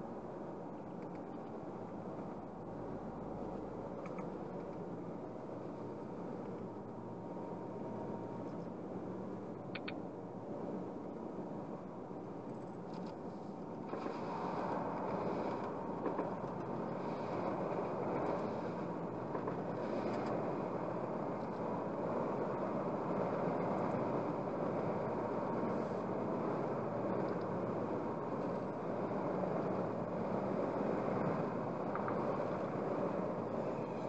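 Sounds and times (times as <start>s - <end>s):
car road and tyre noise: 0.0s - 34.0s.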